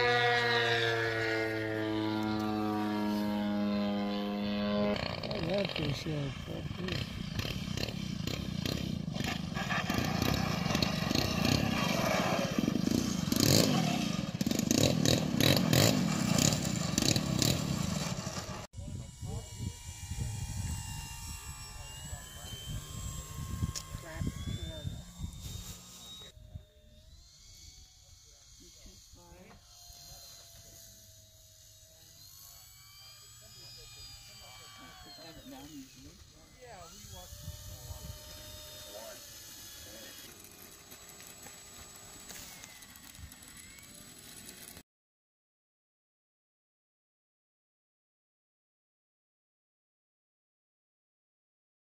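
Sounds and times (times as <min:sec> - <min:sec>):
model airplane engine running: 0:00.0 - 0:44.8.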